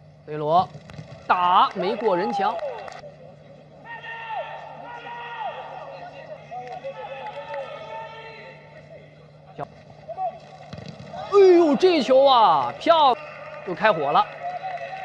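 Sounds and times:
steady low hum: 0.0 - 13.5.

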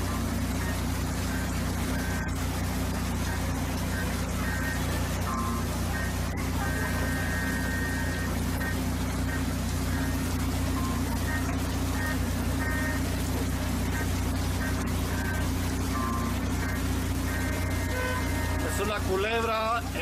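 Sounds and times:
faint indistinct voices: 0.3 - 16.9.

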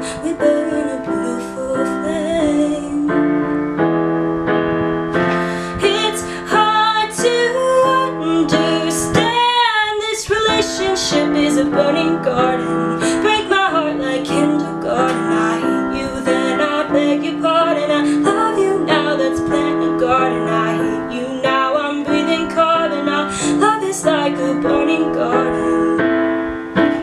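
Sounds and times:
piano chords: 0.0 - 27.0.

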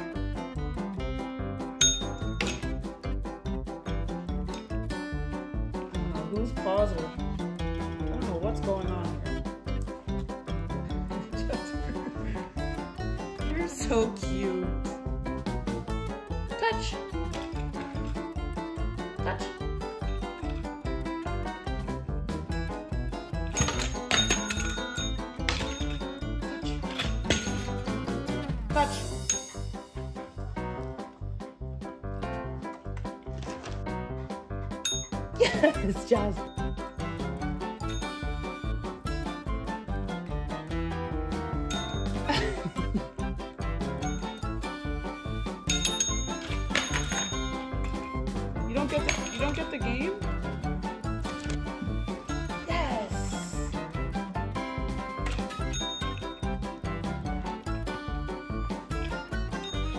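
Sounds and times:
background music with steady beat: 0.0 - 59.9
desk call bell ringing: 1.8 - 2.6, 23.5 - 26.3, 37.6 - 38.6, 41.7 - 42.3, 44.0 - 44.8, 45.6 - 47.9, 55.5 - 56.6, 59.3 - 59.9.

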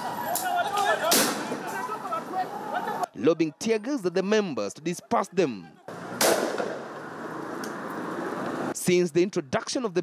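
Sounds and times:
crowd voices: 0.0 - 3.6
tear-gas launcher bang: 6.2 - 6.8.

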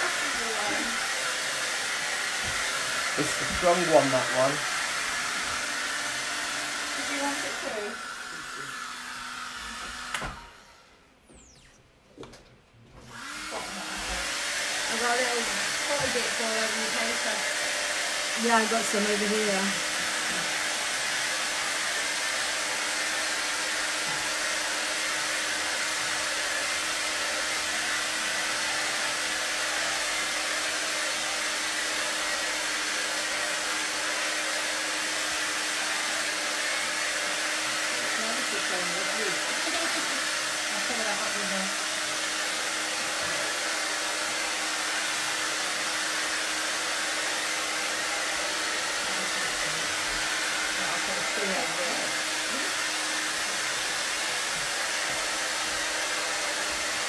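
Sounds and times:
hair dryer blowing: 0.0 - 11.6, 12.9 - 57.0.

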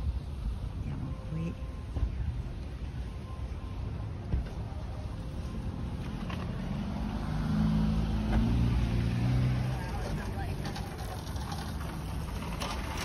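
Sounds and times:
car engine driving past: 5.7 - 12.4.

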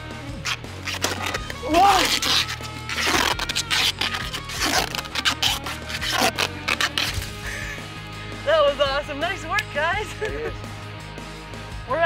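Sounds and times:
background music: 0.0 - 12.0
duct tape ripping off roll: 0.4 - 7.8.

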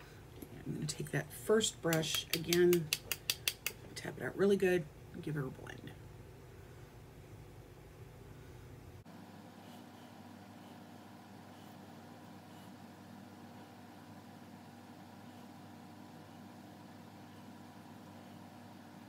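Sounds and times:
steady room hum: 0.0 - 19.0.

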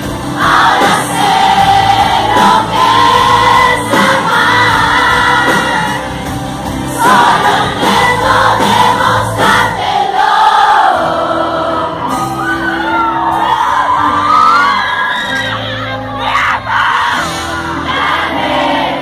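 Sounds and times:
audience singing along: 0.0 - 14.0, 16.0 - 19.0
woman singing with a band: 0.4 - 6.2, 6.9 - 11.1.

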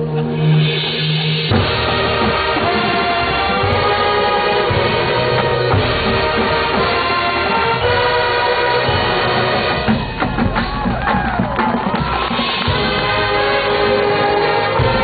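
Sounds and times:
marching band chords: 0.0 - 15.0
drum strikes: 0.8 - 8.0, 8.9 - 15.0.

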